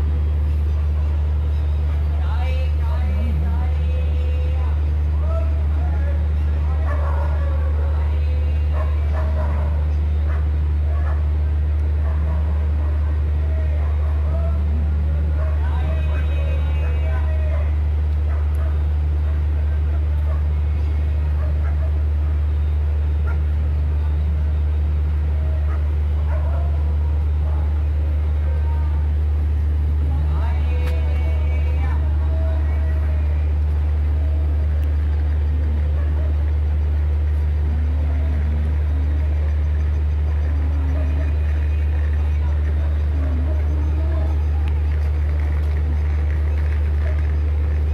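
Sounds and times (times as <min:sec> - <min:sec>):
faint voices: 0:00.0 - 0:47.9
train engine droning: 0:00.0 - 0:47.9.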